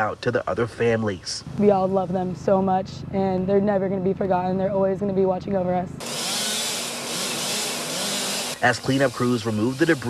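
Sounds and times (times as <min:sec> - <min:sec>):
chainsaw cutting: 0:06.0 - 0:10.0.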